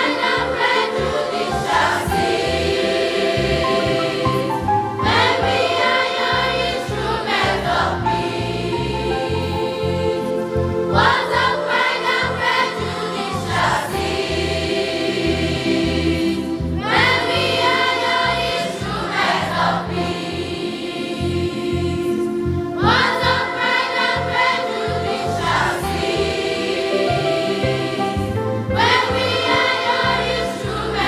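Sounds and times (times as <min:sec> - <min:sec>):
children's choir singing hymn: 0:00.0 - 0:31.0
electronic keyboards: 0:00.0 - 0:31.0.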